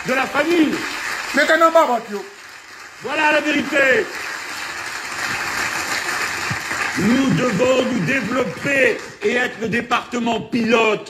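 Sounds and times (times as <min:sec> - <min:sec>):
audience applauding: 0:00.0 - 0:09.6.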